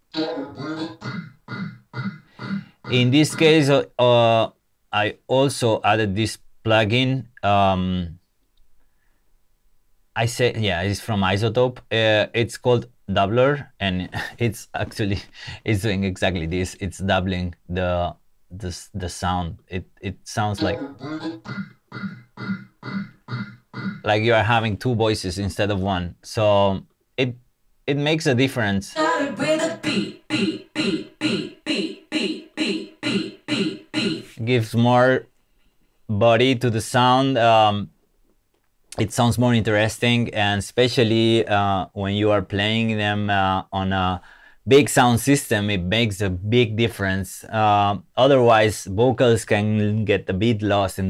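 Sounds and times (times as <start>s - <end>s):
chopped vocal sample stuttering: 0.0s - 3.7s, 20.6s - 24.4s, 29.0s - 34.5s
man talking: 2.9s - 8.2s, 10.2s - 20.9s, 24.0s - 29.0s, 34.4s - 35.3s, 36.1s - 37.9s, 38.9s - 51.0s.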